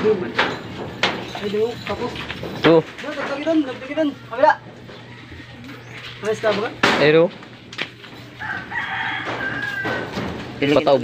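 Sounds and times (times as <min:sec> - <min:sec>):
rooster crowing: 0:04.9 - 0:06.0, 0:08.2 - 0:10.6.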